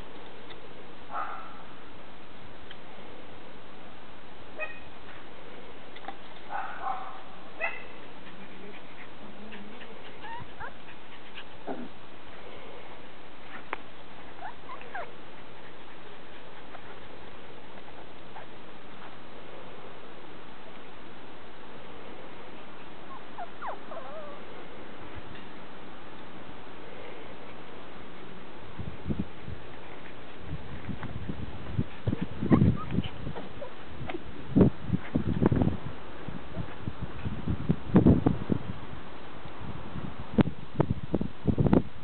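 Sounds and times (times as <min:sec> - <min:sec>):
background hiss: 0:00.0 - 0:42.0
puppies yipping and whining: 0:08.7 - 0:12.0, 0:14.3 - 0:15.7, 0:23.0 - 0:24.4, 0:32.4 - 0:33.7.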